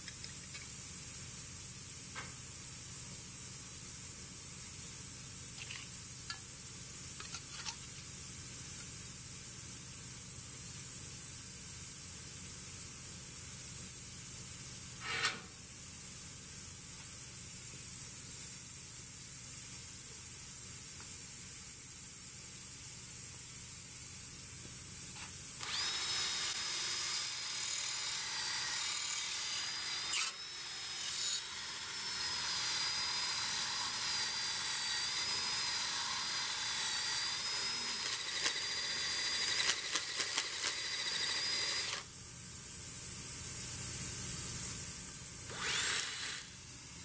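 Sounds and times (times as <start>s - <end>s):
power tool whining: 25.6s - 42.1s, 45.5s - 46.6s.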